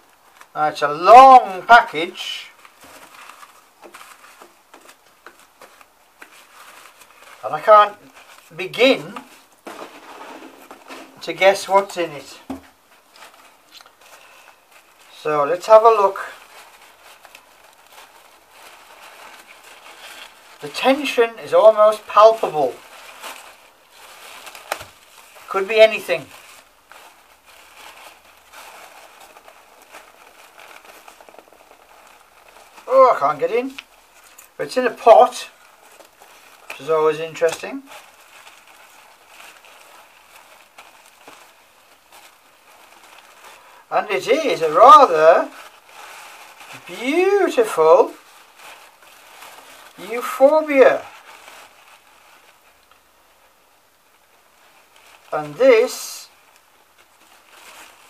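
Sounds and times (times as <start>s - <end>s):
wrapping rustling and crinkling: 0.0s - 58.0s.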